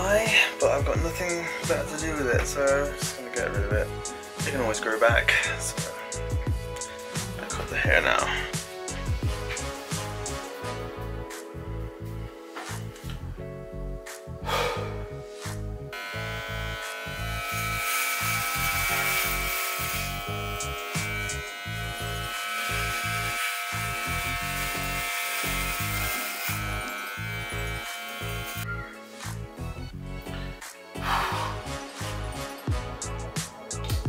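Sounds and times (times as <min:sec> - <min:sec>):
background music with steady beat: 0:00.0 - 0:34.0
electric hair clippers buzzing: 0:15.9 - 0:28.6.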